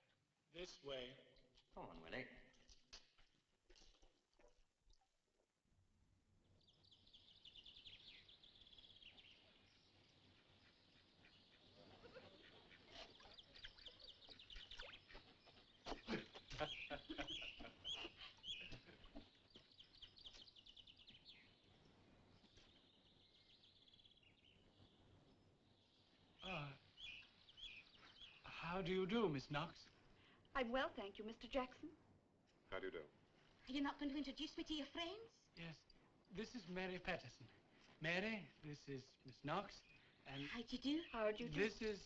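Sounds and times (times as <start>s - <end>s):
faint birdsong chirps and trills: 0.0s - 5.4s, 6.0s - 42.0s.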